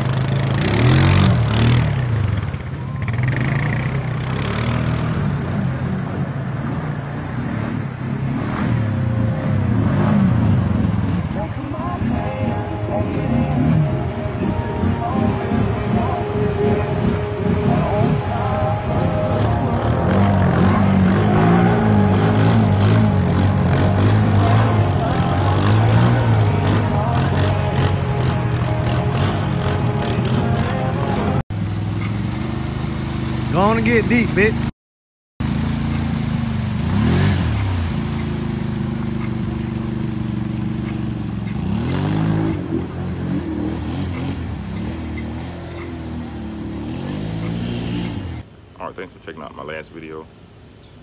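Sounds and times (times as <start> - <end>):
quad engine revving: 0.0 - 6.1, 19.0 - 30.8, 31.5 - 34.7, 35.4 - 48.5
water splashing and churning: 31.5 - 34.7, 35.4 - 48.6.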